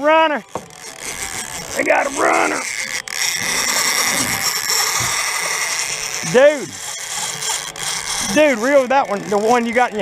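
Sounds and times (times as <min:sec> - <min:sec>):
fishing reel clicker buzzing: 0:00.3 - 0:10.0.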